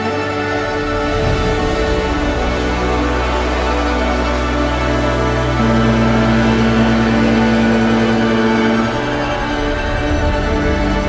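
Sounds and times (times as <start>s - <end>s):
sustained note over low drone: 0.0s - 11.0s.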